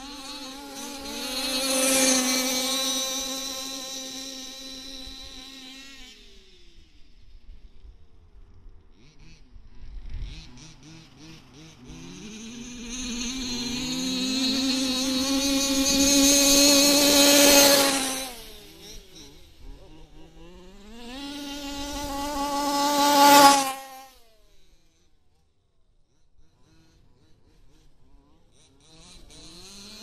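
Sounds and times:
small two-stroke engine revving: 0.0s - 30.0s.

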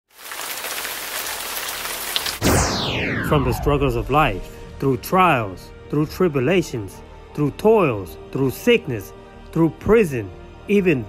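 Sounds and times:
steady rain falling: 0.1s - 2.4s.

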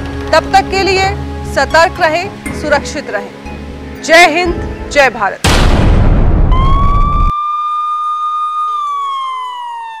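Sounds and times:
siren-like wail: 6.4s - 10.0s.

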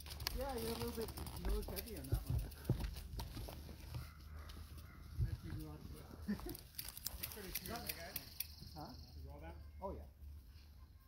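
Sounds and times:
bike clicking and rattling: 0.0s - 8.8s
wind: 0.0s - 11.0s.

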